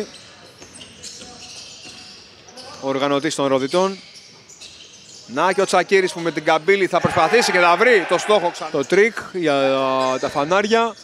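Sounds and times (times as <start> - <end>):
sports hall background noise: 0.0 - 11.0.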